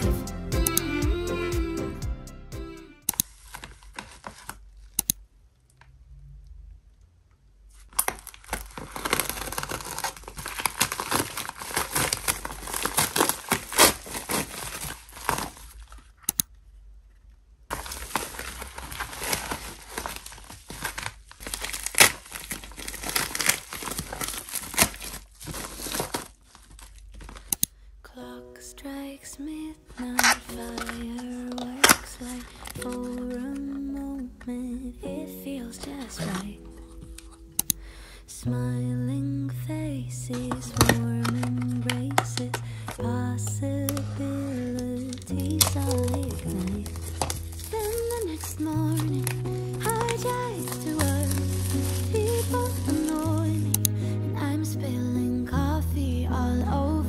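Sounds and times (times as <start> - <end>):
soft music: 0.0 - 3.2, 28.1 - 57.0
plastic packaging rustling: 3.2 - 5.0, 7.7 - 16.3, 17.7 - 27.5, 29.9 - 34.4, 35.6 - 38.2, 40.2 - 54.2.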